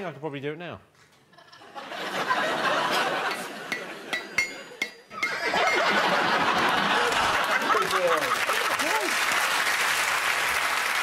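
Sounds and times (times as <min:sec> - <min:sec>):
audience laughter: 0:01.3 - 0:09.6
audience applause: 0:06.0 - 0:11.0.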